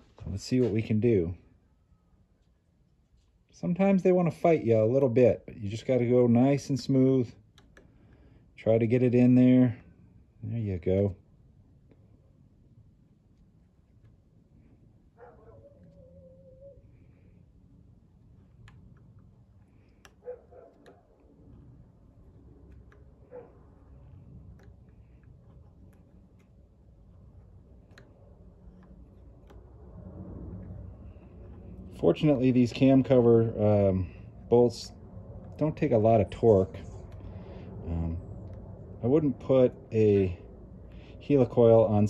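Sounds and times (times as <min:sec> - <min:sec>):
faint clicks: 0:18.3 - 0:30.0.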